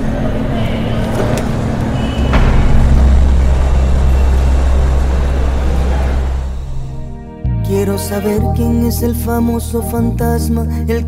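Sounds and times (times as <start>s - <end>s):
vehicle engine rumble: 0.0s - 9.6s.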